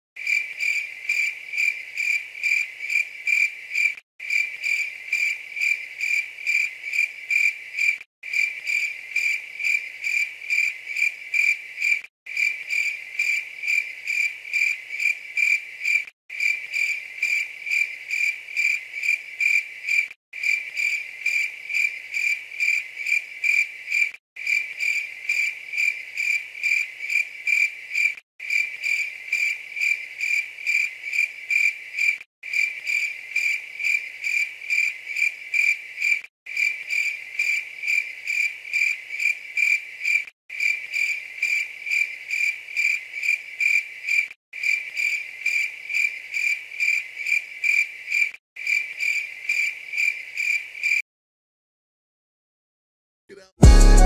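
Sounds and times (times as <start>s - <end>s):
crickets chirping: 0.2s - 51.0s.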